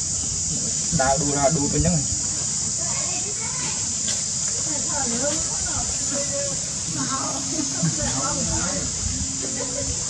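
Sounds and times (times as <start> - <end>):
insects droning: 0.0 - 10.0
faint distant voices: 0.5 - 10.0.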